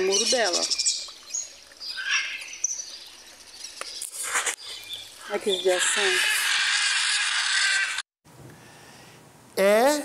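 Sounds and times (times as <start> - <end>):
birds chirping: 0.0 - 8.0.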